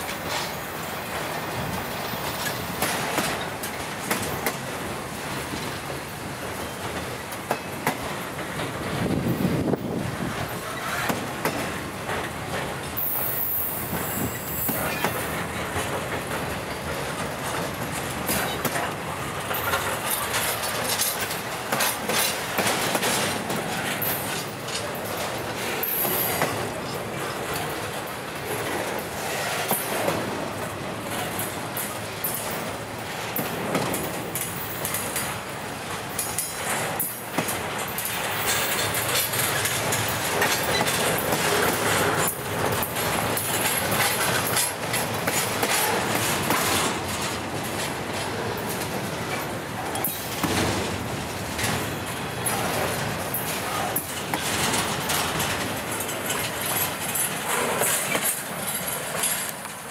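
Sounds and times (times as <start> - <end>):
freight train rolling past: 0.0 - 59.9
train wheels clicking over rail joints: 0.0 - 59.9.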